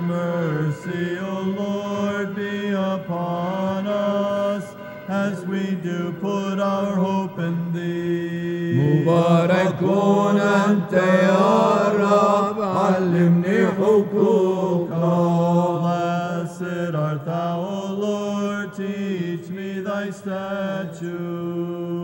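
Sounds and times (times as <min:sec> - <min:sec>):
held drone note: 0:00.0 - 0:22.0
men chanting: 0:00.0 - 0:22.0.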